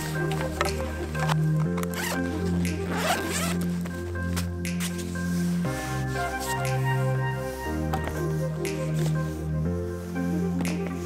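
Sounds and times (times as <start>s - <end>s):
music with sustained chords: 0.0s - 11.0s
zipper pulled open: 0.3s - 3.7s.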